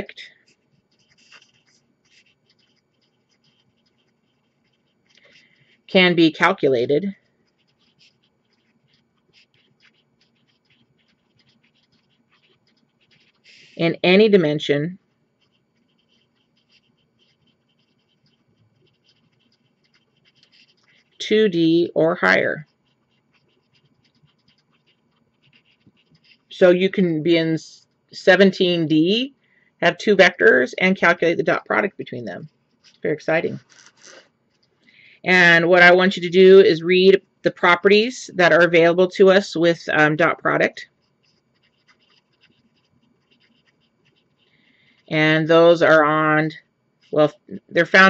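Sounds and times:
felt-tip marker scratching on paper: 0.0 - 48.0.

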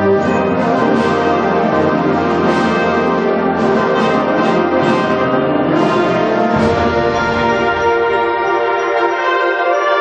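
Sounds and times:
wind band playing held chords: 0.0 - 10.0.

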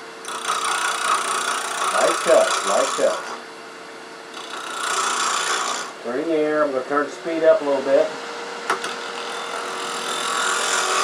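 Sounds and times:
lathe hum: 0.0 - 3.4, 4.2 - 11.0
lathe tool shaving wood: 0.2 - 3.4, 4.3 - 6.0, 7.1 - 11.0.

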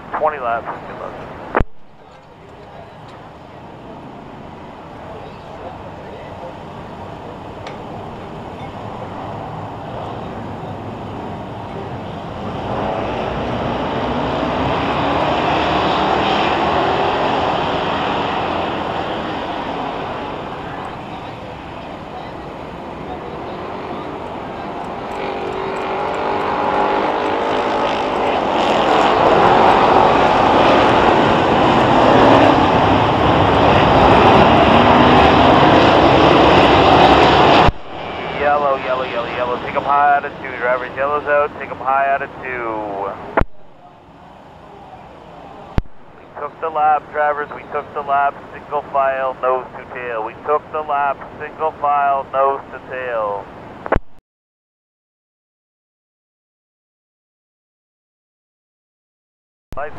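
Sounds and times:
race car engines at full throttle: 0.0 - 53.8.

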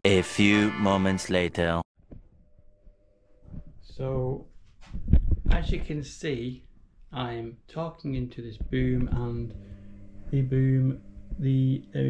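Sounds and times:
man's voice: 0.0 - 1.9, 10.4 - 12.0
faint steady hum: 6.1 - 12.0.

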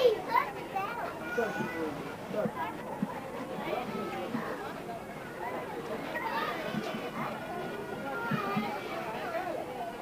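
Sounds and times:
children calling and chattering: 0.0 - 10.0
other voices: 0.0 - 10.0.

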